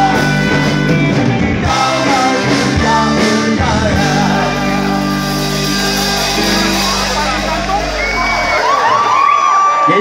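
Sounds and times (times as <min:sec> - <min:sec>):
live band holding chord: 0:00.0 - 0:09.4
crowd cheering and whooping: 0:04.5 - 0:10.0.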